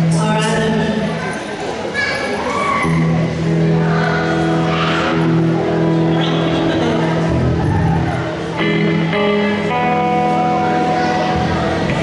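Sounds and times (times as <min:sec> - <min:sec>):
bass guitar sustained notes: 0:02.8 - 0:12.0
electric guitar sustained chord: 0:03.2 - 0:12.0.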